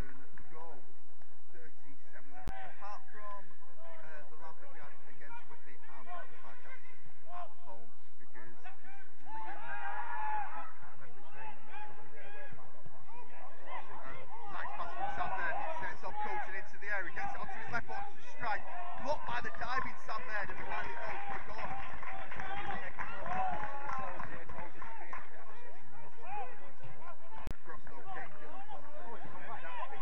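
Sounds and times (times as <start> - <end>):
people talking and laughing: 1.5 - 30.0.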